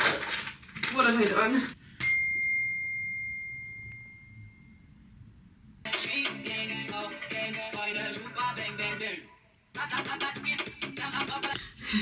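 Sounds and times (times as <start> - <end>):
high bell-like ding: 2.0 - 5.0.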